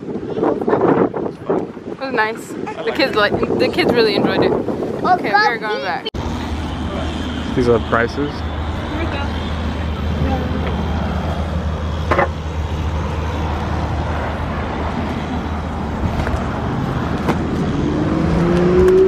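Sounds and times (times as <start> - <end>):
traffic rumble: 0.0 - 19.0
vehicle engine pulling away: 6.2 - 19.0.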